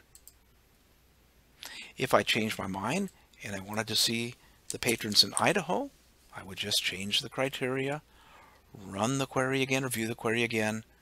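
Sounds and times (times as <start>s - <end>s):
computer mouse clicks: 0.0s - 0.4s
short breathy hiss: 1.6s - 2.0s.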